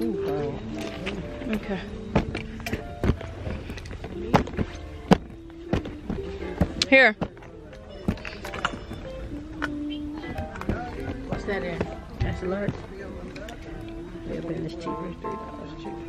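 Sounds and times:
shop background music: 0.0 - 16.0.

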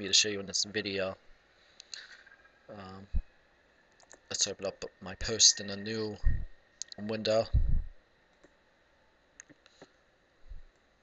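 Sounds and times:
computer mouse clicks: 9.4 - 9.9.

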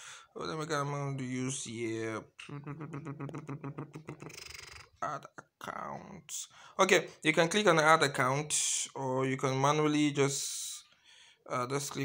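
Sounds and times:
man humming in creaky voice: 2.3 - 5.8.

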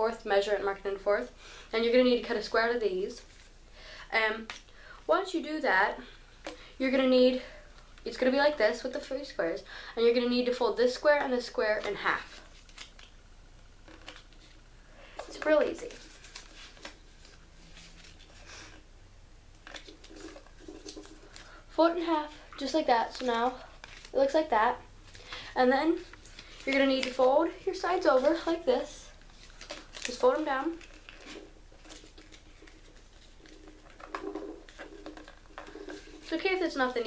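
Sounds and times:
paper being folded and creased: 12.2 - 13.1, 15.4 - 18.5, 19.6 - 21.5, 23.0 - 24.5, 26.0 - 37.0.

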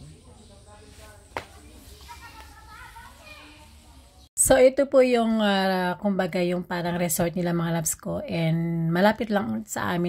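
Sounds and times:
faint chatter of voices: 0.0 - 4.3.

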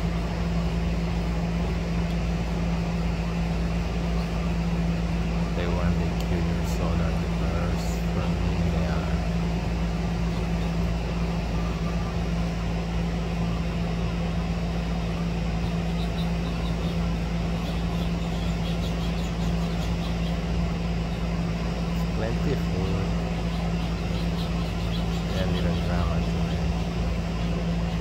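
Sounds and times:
low mechanical hum: 0.0 - 28.0.

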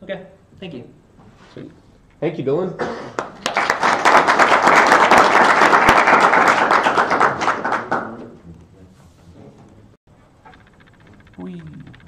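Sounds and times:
audience applauding: 3.2 - 8.3.

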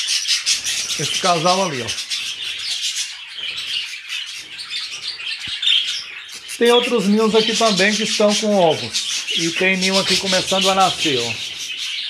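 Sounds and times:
budgerigars chattering: 0.0 - 12.0.

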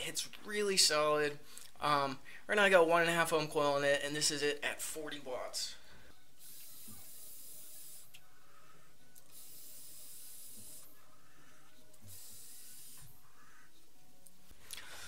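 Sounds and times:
atomiser hissing: 6.4 - 13.7
coil sizzling: 6.4 - 13.7.

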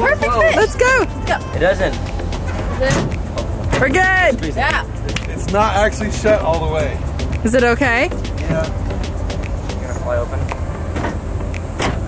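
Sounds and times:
tailgate latching clunk: 2.5 - 3.1, 10.9 - 12.0.

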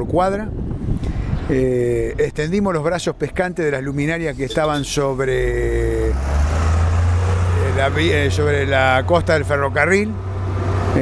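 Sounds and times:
road noise: 0.0 - 11.0
bus engine rumble: 3.4 - 11.0.

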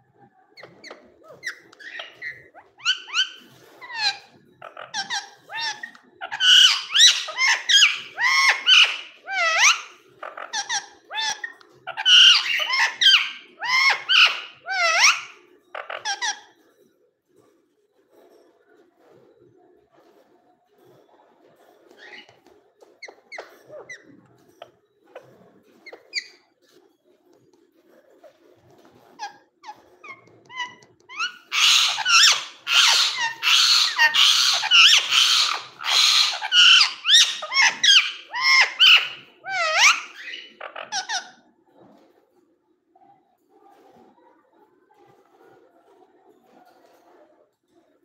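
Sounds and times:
parakeet screeching chatter: 0.5 - 16.6, 21.9 - 22.4, 23.0 - 26.8, 28.1 - 41.5.

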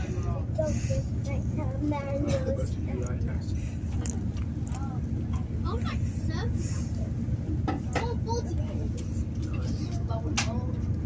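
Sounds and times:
train rumbling: 0.0 - 11.0.

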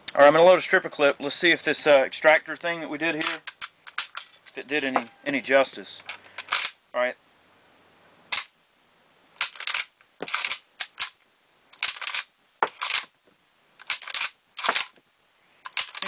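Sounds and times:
rifle bolt action clacking: 15.7 - 16.0.

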